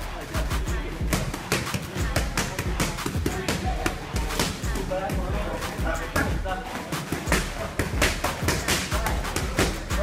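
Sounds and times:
boxing gloves striking mitts: 0:07.0 - 0:10.0.

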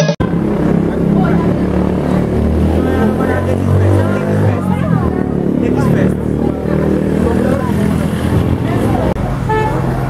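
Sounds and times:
faint voices: 0:00.0 - 0:10.0
road traffic hum: 0:00.0 - 0:10.0.

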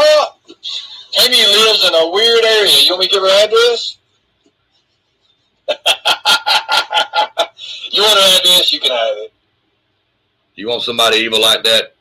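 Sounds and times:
man laughing: 0:05.6 - 0:08.2.

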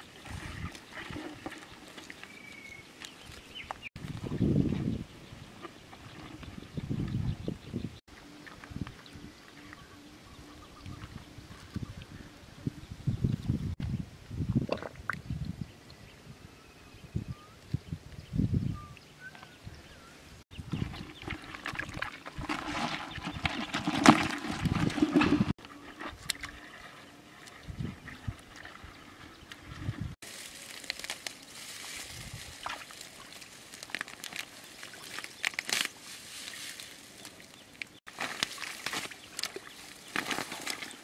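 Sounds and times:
splashing in muddy water: 0:00.0 - 0:04.4, 0:20.6 - 0:41.0
hands squelching in wet mud: 0:20.7 - 0:41.0.

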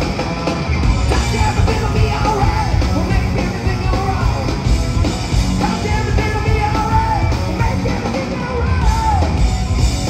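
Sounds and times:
bass: 0:00.0 - 0:10.0
drums: 0:00.0 - 0:10.0
electric guitar: 0:00.0 - 0:10.0.

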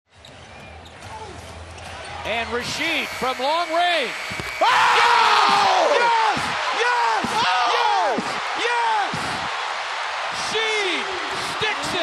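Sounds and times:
arena crowd noise: 0:00.1 - 0:12.0.

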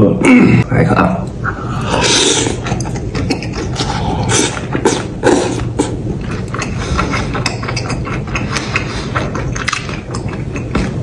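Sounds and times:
man slurping and chewing: 0:01.5 - 0:11.0.

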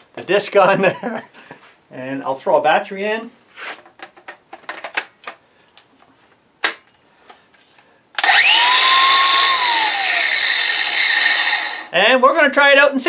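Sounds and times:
angle grinder whining: 0:08.2 - 0:12.0.

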